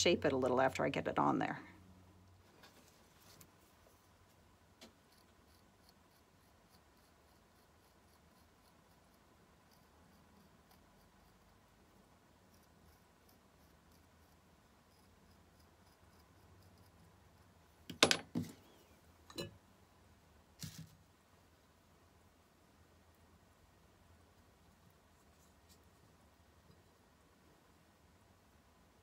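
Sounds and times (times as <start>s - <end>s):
metal tool scratching clay: 4.9s - 17.6s
sharp clicks and knocks: 17.9s - 18.6s.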